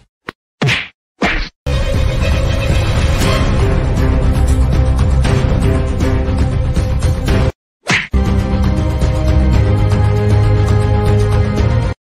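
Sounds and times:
background music: 1.7 - 7.5, 8.2 - 12.0.

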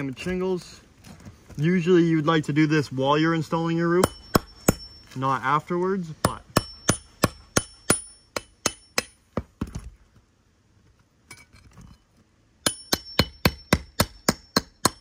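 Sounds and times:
hammer tapping metal pry bar: 4.0 - 5.0, 6.2 - 9.8, 12.6 - 15.0.

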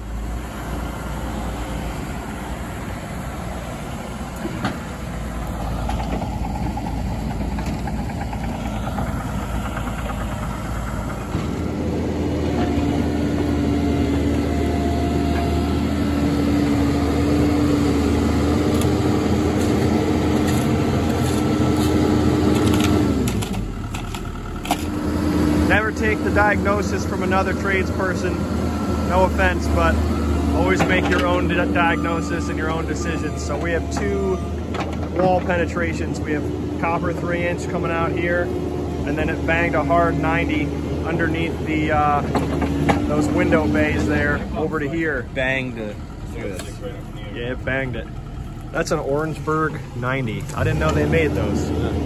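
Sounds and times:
diesel engine running: 0.0 - 52.0
hydraulic whine: 0.0 - 52.0.

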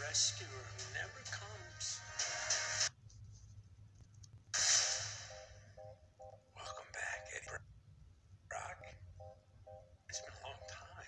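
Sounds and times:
loud burst of noise: 4.6 - 5.4
dialogue through speaker: 10.0 - 11.0.

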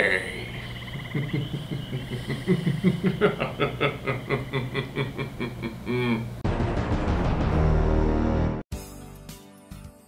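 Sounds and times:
man laughing: 1.0 - 6.4.

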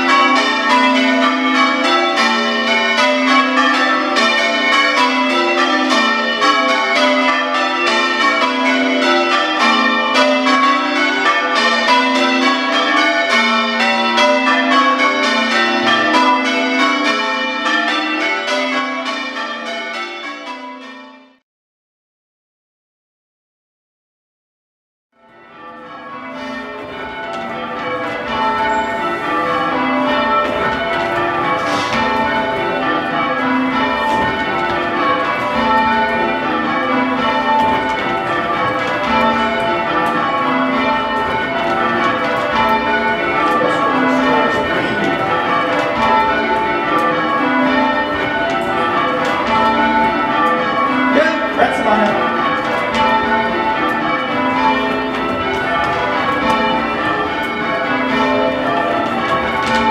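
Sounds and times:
church bells change ringing: 0.0 - 21.4, 25.2 - 59.9.

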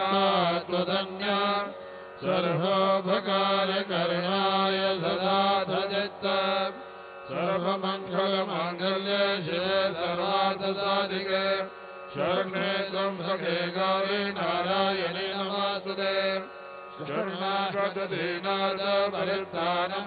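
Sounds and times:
melodic devotional chant: 0.0 - 20.0.

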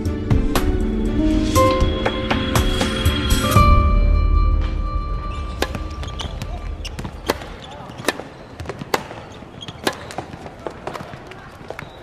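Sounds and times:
rackets hitting shuttlecock: 5.5 - 11.9.

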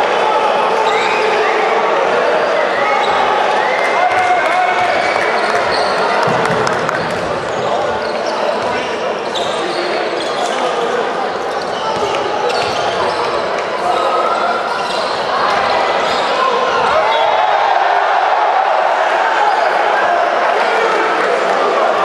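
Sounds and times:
crowd and player voices: 0.0 - 22.0
shoe squeaks: 5.4 - 6.1, 7.5 - 17.2.

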